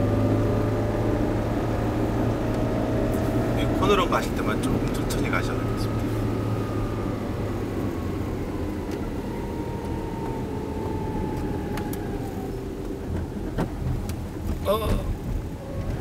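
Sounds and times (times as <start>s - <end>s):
car engine rumble: 0.0s - 16.0s
road noise: 0.0s - 16.0s.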